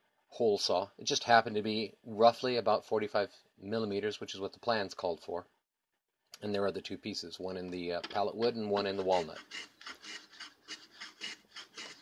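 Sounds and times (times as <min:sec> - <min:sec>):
hand tool rasping on wood: 0:08.7 - 0:12.0.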